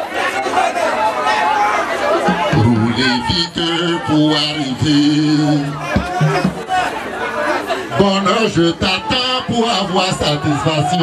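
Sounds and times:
voices talking over one another: 0.0 - 11.0.

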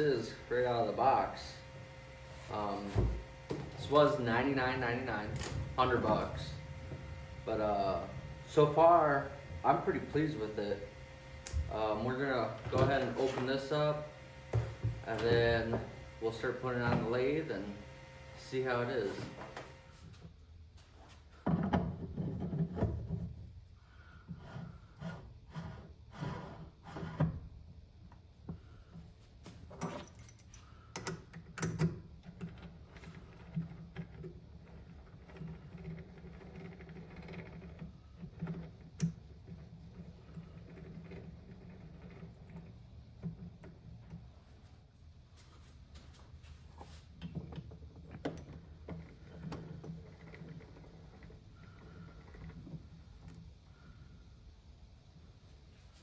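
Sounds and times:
metal parts knocking and rattling: 29.7 - 34.3.

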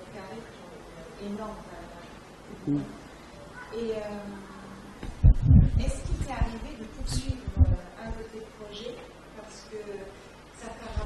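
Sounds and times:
microphone handling thumps: 5.0 - 8.3.

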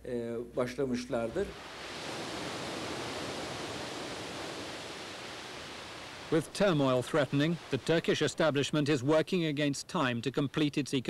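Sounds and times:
water rushing from dam gates: 1.5 - 9.7.

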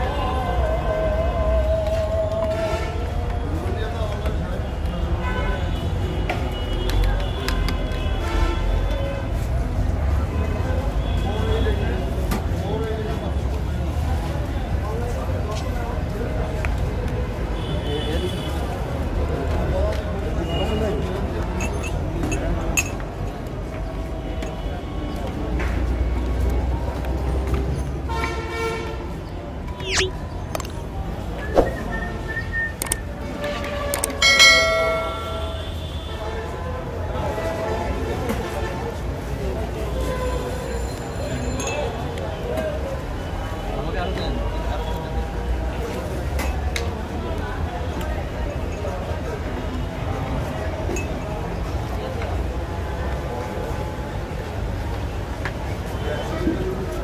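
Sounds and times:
voices: 0.0 - 9.0, 9.8 - 57.0
low traffic rumble: 0.0 - 57.0
metal struck ringing like a bell: 34.2 - 35.8.

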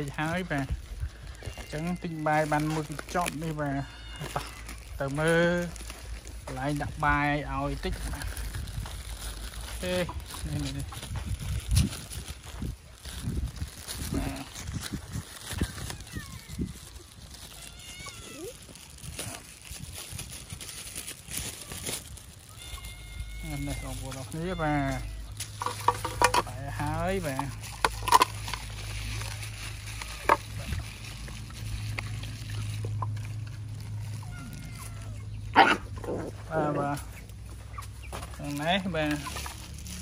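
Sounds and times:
cat meowing: 1.3 - 2.7, 3.6 - 4.8, 15.6 - 16.7, 17.4 - 18.7, 21.5 - 25.4, 34.1 - 35.4
dog barking: 35.6 - 35.9.

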